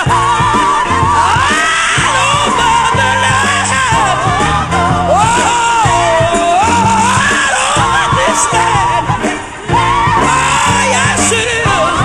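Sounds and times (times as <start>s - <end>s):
instrumental backing: 0.0s - 12.0s
woman singing gospel: 0.0s - 12.0s.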